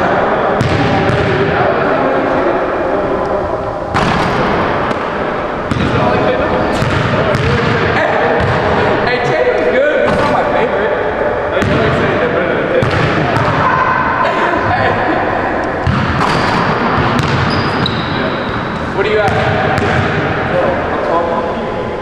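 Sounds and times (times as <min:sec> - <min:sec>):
indistinct voices: 0:00.0 - 0:22.0
basketball bouncing on gym floor: 0:06.7 - 0:08.7, 0:12.8 - 0:13.6, 0:15.8 - 0:18.1, 0:19.2 - 0:20.2.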